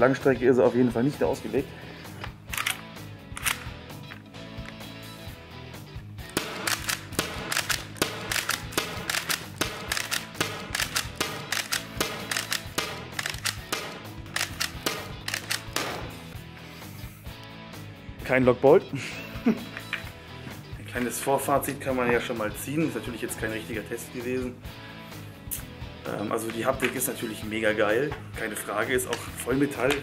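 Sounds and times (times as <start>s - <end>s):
background music: 0.0s - 30.0s
paintball gun shots: 6.3s - 16.3s.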